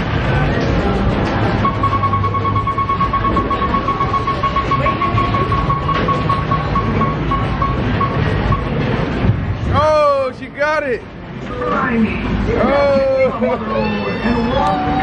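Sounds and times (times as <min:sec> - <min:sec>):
arcade din: 0:01.6 - 0:08.8
prize wheel beeps: 0:01.6 - 0:08.8.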